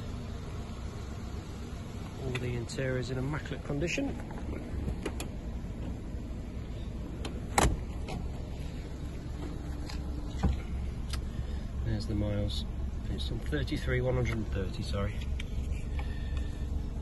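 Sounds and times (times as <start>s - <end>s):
low rumble in car cabin: 0.0s - 17.0s.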